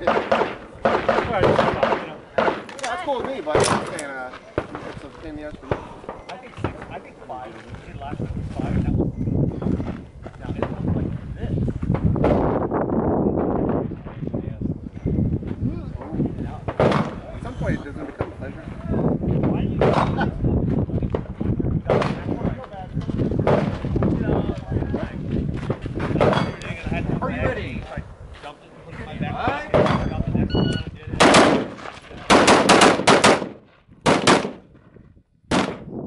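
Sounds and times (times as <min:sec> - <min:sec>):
handgun shot: 0:00.0 - 0:04.1, 0:31.2 - 0:34.6, 0:35.5 - 0:35.9.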